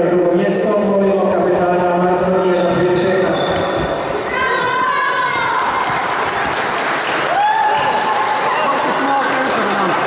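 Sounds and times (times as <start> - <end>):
crowd noise: 0.0 - 10.0
voices echoing in a sports hall: 0.0 - 10.0
people clapping: 4.2 - 10.0.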